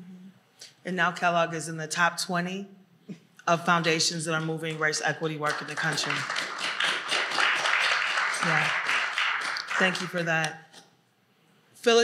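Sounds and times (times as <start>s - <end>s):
audience applause: 5.5s - 10.3s.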